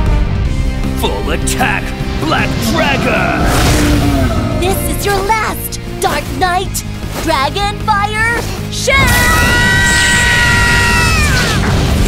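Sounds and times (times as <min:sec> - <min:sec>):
dramatic music: 0:00.0 - 0:12.0
loud rumbling blast: 0:01.3 - 0:05.9.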